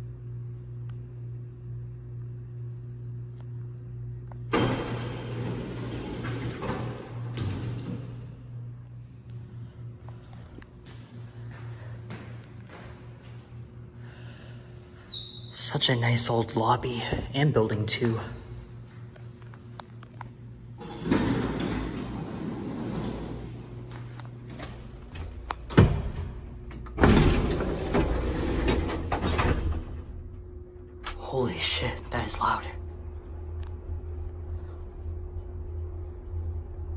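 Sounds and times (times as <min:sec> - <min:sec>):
low machine hum: 0:00.0 - 0:36.9
elevator door rumbling on track: 0:04.5 - 0:08.4, 0:20.8 - 0:31.3.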